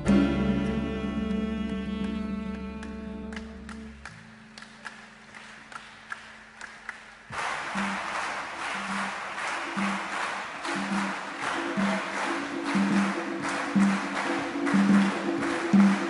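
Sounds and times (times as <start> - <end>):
low repeating music note: 0.0 - 4.6, 7.7 - 16.0
audience applause: 3.3 - 16.0.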